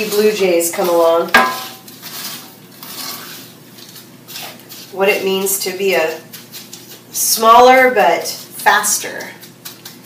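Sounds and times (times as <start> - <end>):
soft sizzle: 0.0 - 10.0
wooden spoon scraping skillet: 0.0 - 10.0.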